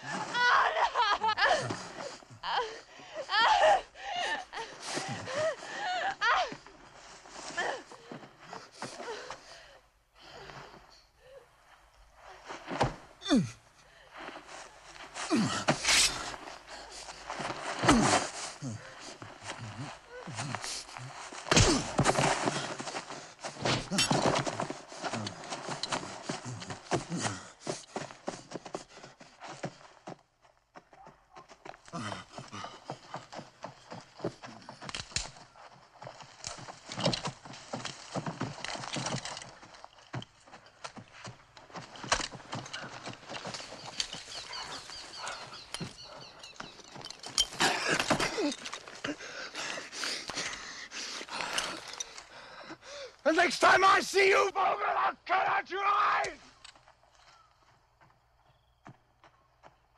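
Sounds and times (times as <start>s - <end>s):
thuds and scuffling: 12.3s - 13.2s, 14.2s - 28.8s
wordless grunts and cries: 13.2s - 13.6s, 15.2s - 16.4s, 17.8s - 22.8s, 47.5s - 50.2s, 52.8s - 56.4s.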